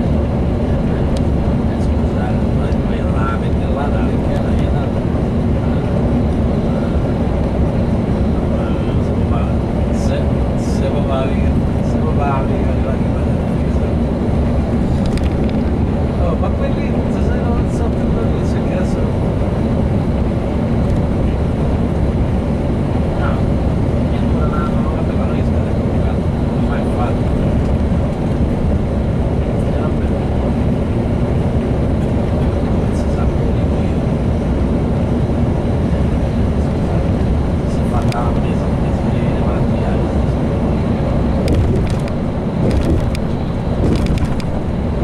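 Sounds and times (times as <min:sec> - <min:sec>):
bus engine and road rumble: 0:00.0 - 0:45.0.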